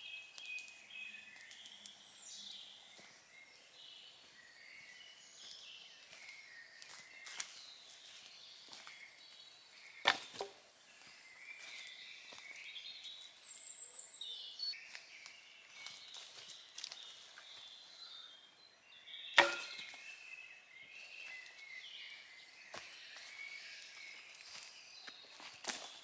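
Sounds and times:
knife chopping into wood: 19.4 - 19.9.

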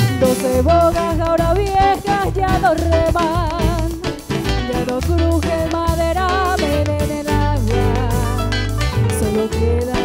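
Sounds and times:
heavy bass line: 0.0 - 10.0
live band playing: 0.0 - 10.0.

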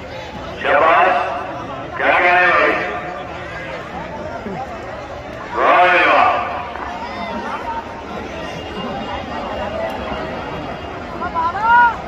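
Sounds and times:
man calling over loudspeaker: 0.4 - 3.9, 5.4 - 6.8.

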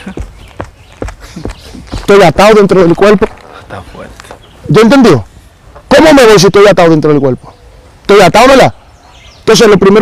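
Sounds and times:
soft footstep knocks and thumps: 0.0 - 2.3.

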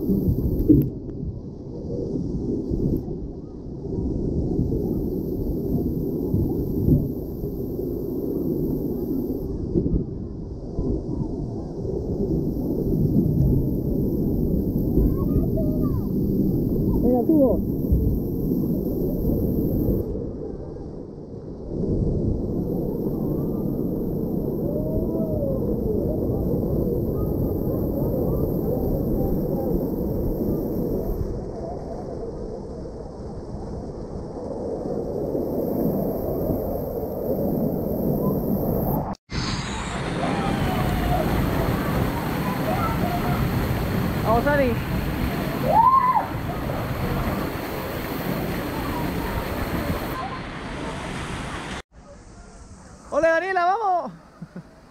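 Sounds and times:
splashing and spraying water: 39.3 - 51.9.

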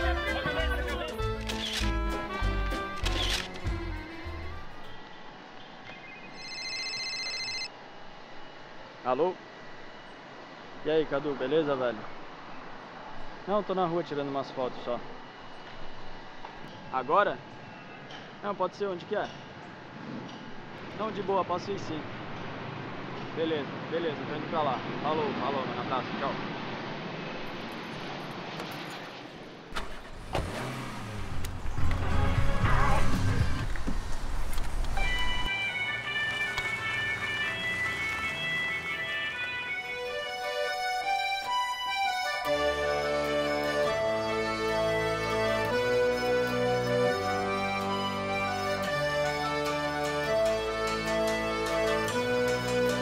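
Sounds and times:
city street traffic: 0.0 - 53.0
mobile phone ringing: 6.3 - 7.8.

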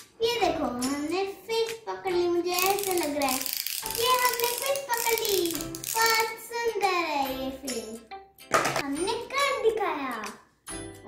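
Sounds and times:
child singing: 0.2 - 3.4, 4.0 - 8.0.

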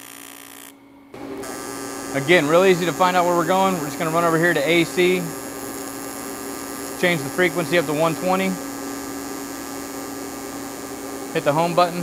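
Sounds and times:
welding arc buzzing: 0.0 - 12.0.

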